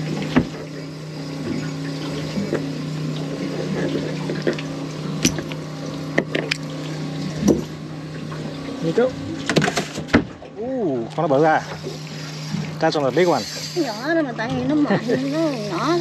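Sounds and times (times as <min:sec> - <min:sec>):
water running: 0:00.0 - 0:09.7, 0:10.4 - 0:16.0
water pump humming: 0:00.0 - 0:16.0.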